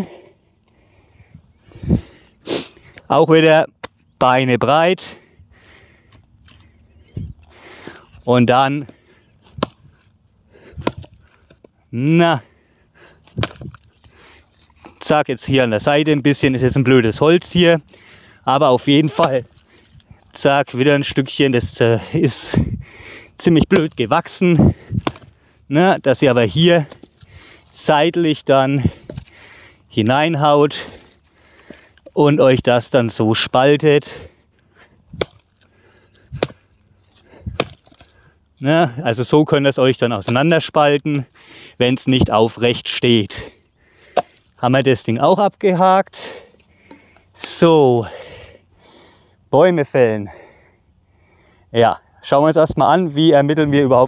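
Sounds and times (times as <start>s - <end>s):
axe chopping log: 9.6s - 9.8s, 10.8s - 11.2s, 13.4s - 13.8s, 23.7s - 24.0s, 25.0s - 25.3s, 35.2s - 35.4s, 36.3s - 36.7s, 37.5s - 38.1s.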